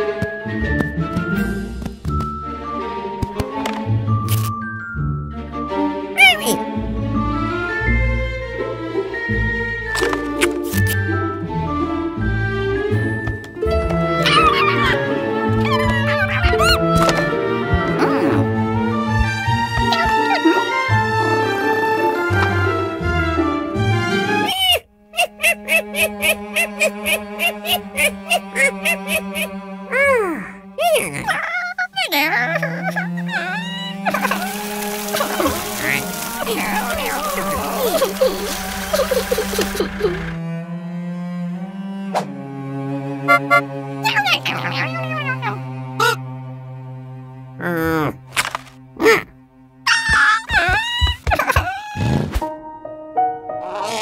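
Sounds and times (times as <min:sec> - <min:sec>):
cartoon background music: 0:00.0 - 0:54.0
cartoon monkey vocal sounds: 0:06.2 - 0:06.6, 0:14.2 - 0:16.9, 0:19.9 - 0:20.7, 0:24.4 - 0:40.3, 0:43.3 - 0:46.2, 0:49.9 - 0:52.4, 0:53.6 - 0:54.0.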